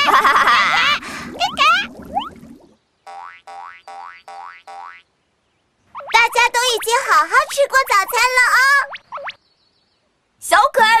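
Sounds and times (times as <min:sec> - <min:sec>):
cartoon boing: 0:03.1 - 0:05.0.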